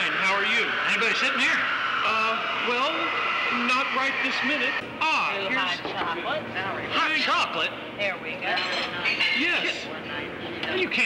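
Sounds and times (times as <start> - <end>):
indistinct talking: 0.0 - 11.0
steady background noise: 0.0 - 11.0.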